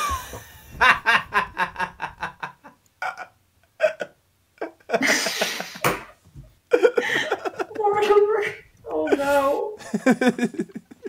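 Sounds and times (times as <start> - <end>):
hearty laughter: 0.0 - 7.9, 9.8 - 11.0.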